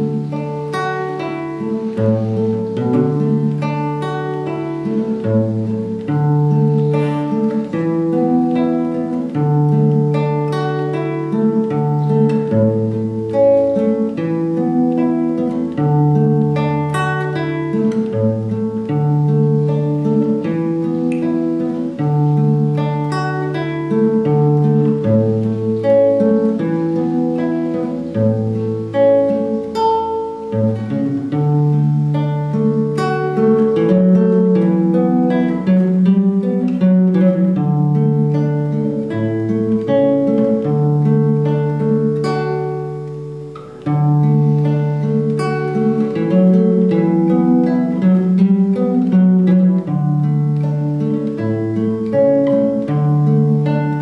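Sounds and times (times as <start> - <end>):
fingerpicked classical guitar: 0.0 - 54.0.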